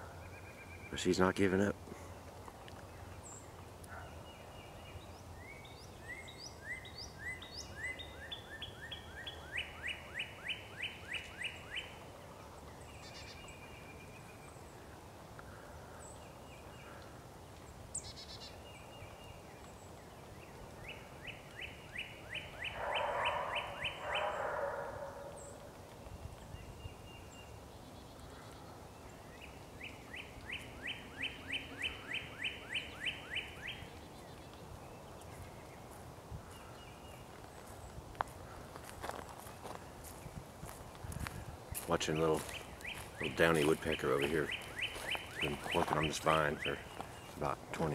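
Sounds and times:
songbird singing short notes: 41.8s - 47.5s.

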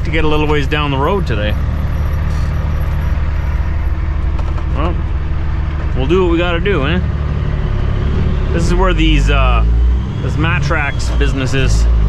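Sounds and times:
diesel engine low rumble: 0.0s - 12.0s.

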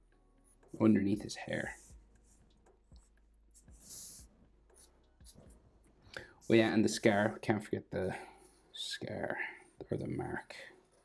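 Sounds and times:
marker drawing on paper: 0.5s - 5.7s.

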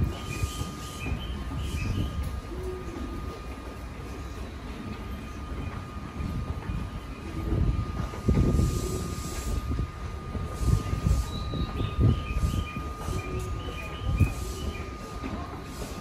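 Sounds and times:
high-pitched electrical hum: 0.0s - 16.0s
air hissing: 8.2s - 16.0s.

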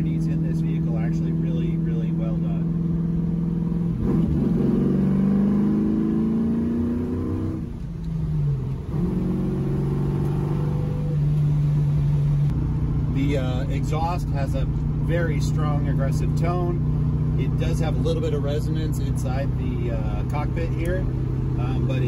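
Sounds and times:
car engine and exhaust: 0.0s - 22.0s.

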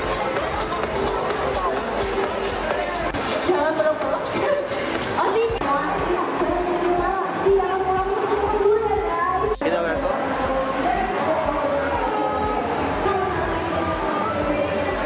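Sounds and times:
song with singer and backing music: 0.0s - 15.0s.

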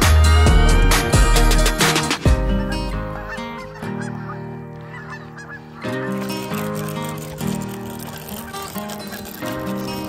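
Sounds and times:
background music: 0.0s - 10.0s
geese honking: 0.0s - 10.0s.

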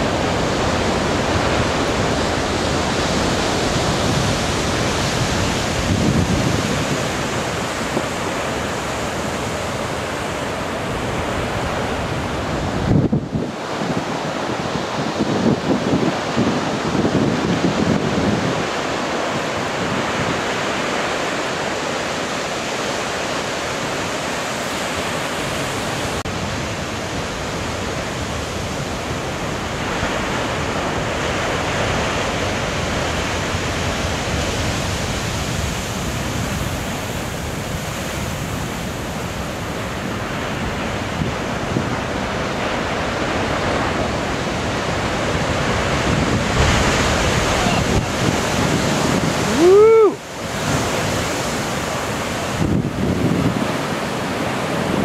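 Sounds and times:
surf breaking on rocky shore: 0.0s - 55.0s
wave slamming into rocks: 43.9s - 49.8s.

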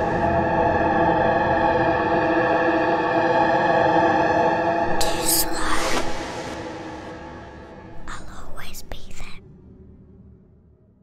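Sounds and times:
reverberant trailer music: 0.0s - 11.0s
person whispering: 4.9s - 6.2s, 8.0s - 9.4s.

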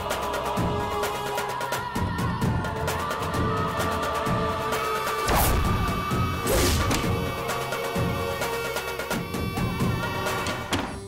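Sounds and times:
dramatic background score: 0.0s - 11.0s.

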